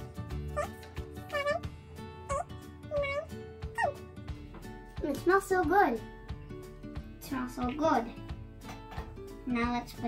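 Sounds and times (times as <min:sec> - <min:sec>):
background music with a beat: 0:00.0 - 0:10.0.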